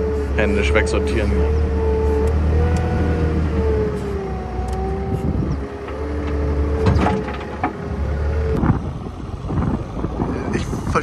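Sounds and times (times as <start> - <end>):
loader engine drone with whine: 0.0 - 11.0.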